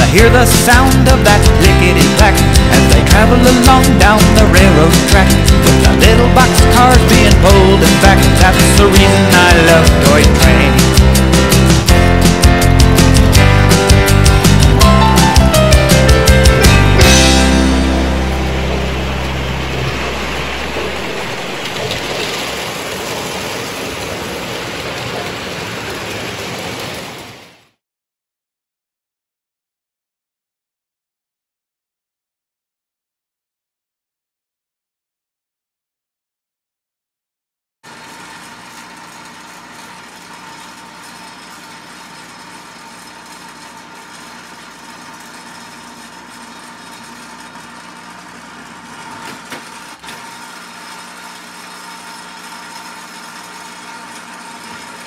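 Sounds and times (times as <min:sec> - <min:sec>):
low song chord ringing: 0:14.3 - 0:21.7
small electric motor humming: 0:37.9 - 0:55.0.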